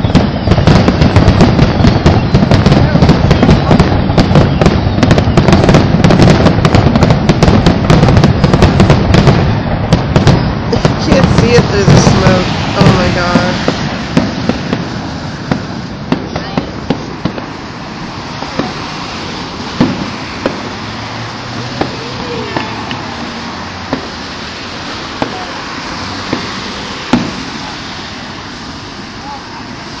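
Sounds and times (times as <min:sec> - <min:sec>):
fireworks bangs and pops: 0:00.0 - 0:29.4
background hubbub: 0:00.0 - 0:30.0.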